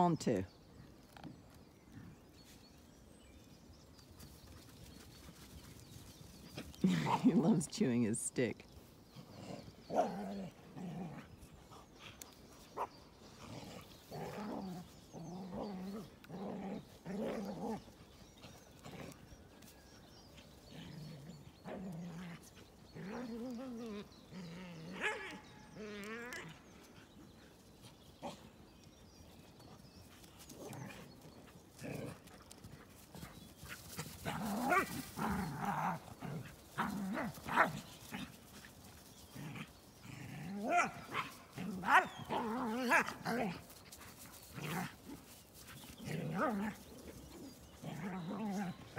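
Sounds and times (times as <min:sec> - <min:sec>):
dogs growling while play-fighting: 0:04.5 - 0:07.3, 0:09.0 - 0:48.9.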